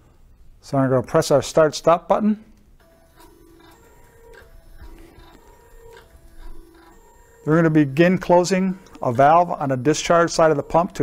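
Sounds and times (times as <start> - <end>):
pump motor whirring in short tones: 2.8 - 11.0.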